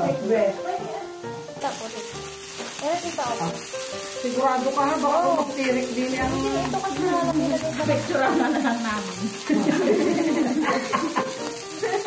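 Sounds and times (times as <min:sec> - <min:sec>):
background music: 0:00.0 - 0:12.0
meat sizzling on a grill pan: 0:00.0 - 0:12.0.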